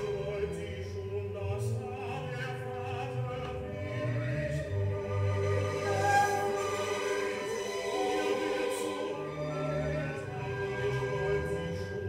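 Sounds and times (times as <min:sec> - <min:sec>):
opera choir singing: 0:00.0 - 0:12.0
orchestra playing sustained chords: 0:00.0 - 0:12.0.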